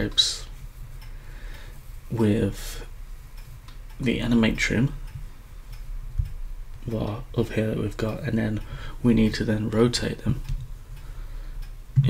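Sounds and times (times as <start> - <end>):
low steady hum: 0.0 - 12.0
faint clicks: 2.8 - 4.1.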